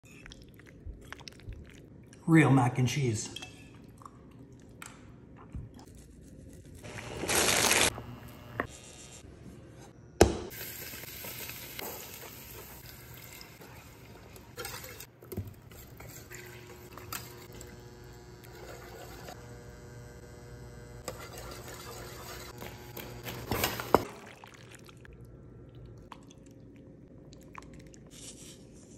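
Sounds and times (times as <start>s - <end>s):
cooking hiss: 10.5s - 15.0s
whisk stirring in metal pan: 11.2s - 17.5s, 21.1s - 22.6s.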